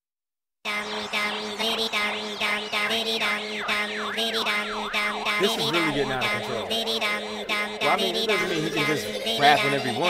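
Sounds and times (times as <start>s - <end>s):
low drone: 0.7s - 10.0s
music beat: 0.7s - 10.0s
siren-like wailing tone: 0.7s - 10.0s.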